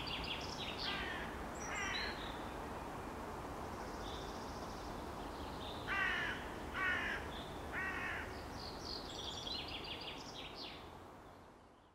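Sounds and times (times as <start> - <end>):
loud bird calls: 0.0 - 2.4
steady outdoor background hum: 0.0 - 11.9.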